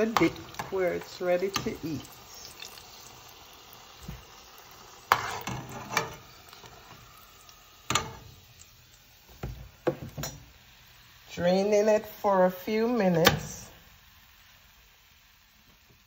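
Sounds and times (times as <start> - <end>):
oil sizzling in a saucepan: 0.0 - 16.0.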